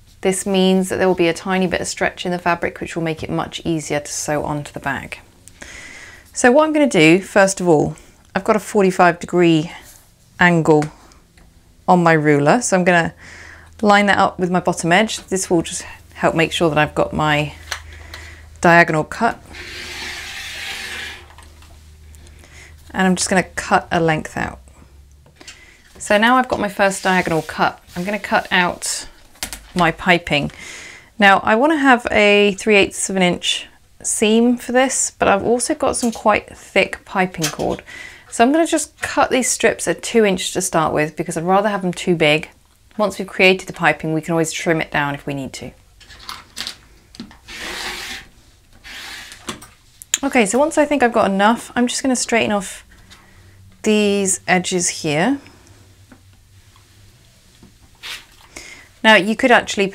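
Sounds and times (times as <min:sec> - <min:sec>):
rotary cutter slicing fabric: 0:19.5 - 0:21.4, 0:47.5 - 0:49.4.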